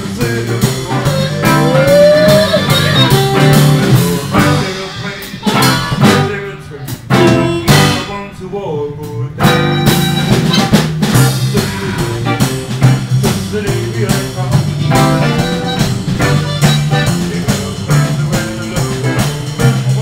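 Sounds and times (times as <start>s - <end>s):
electric guitar: 0.0s - 8.1s, 9.4s - 20.0s
drum kit: 0.0s - 20.0s
harmonica lead with bent notes: 0.5s - 6.4s, 7.1s - 8.2s, 9.4s - 13.0s, 14.4s - 19.4s.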